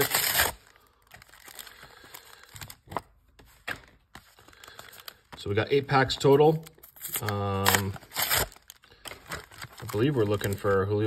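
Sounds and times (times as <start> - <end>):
packaging snapping: 0.0 - 5.5, 6.5 - 10.7
plastic and foil packaging crinkling: 0.0 - 11.0.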